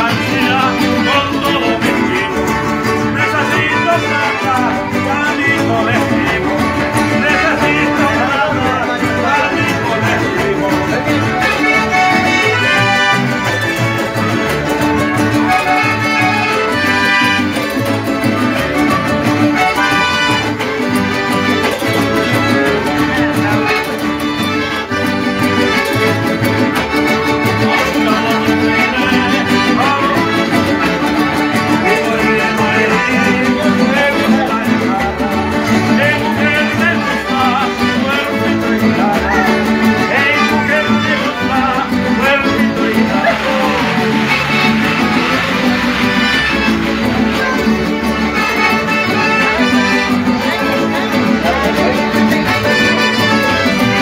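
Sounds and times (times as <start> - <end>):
strummed guitars: 0.0 - 54.0
voices singing: 0.0 - 54.0.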